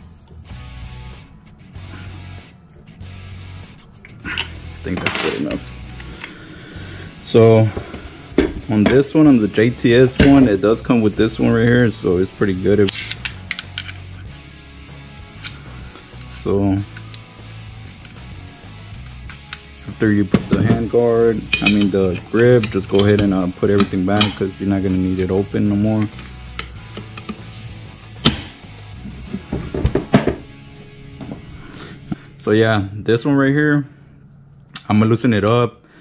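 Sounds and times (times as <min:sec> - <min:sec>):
soft background music: 0:00.0 - 0:36.0
clicks of gun parts: 0:12.8 - 0:14.0
pistol parts knocking on wooden table: 0:29.5 - 0:30.4.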